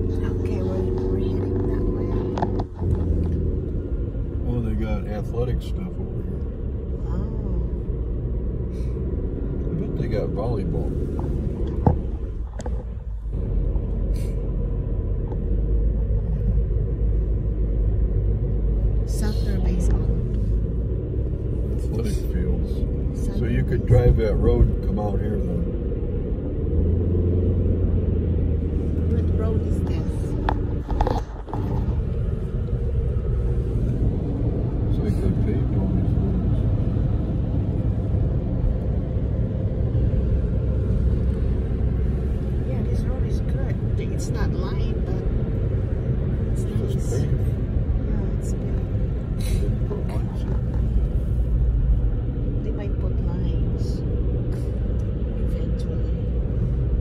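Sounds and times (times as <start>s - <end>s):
car road and engine rumble: 0.0s - 57.0s.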